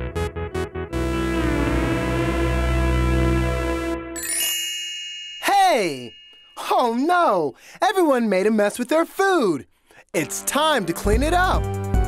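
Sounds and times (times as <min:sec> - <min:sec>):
bouncy keyboard music: 0:00.0 - 0:07.2, 0:10.2 - 0:12.0
bright ringing ding: 0:04.2 - 0:06.8.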